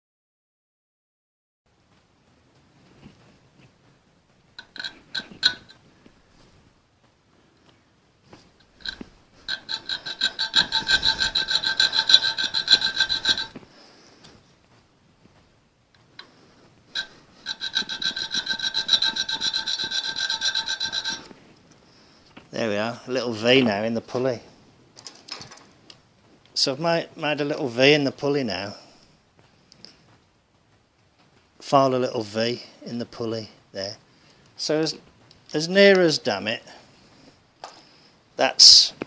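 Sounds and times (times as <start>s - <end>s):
file strokes on ringing metal: 8.8s - 13.6s, 16.9s - 21.4s.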